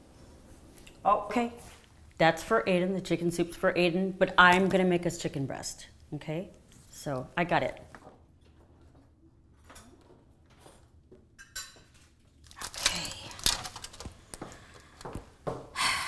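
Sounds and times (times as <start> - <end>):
dishes rustling and clinking: 8.4 - 12.6.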